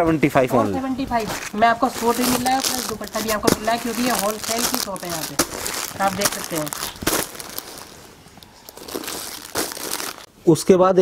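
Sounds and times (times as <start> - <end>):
plastic wrapping crinkling: 1.2 - 10.3.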